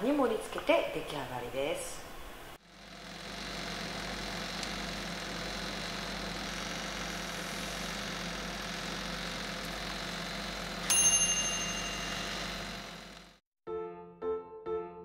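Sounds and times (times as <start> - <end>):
electric oven humming: 0.0 - 13.4.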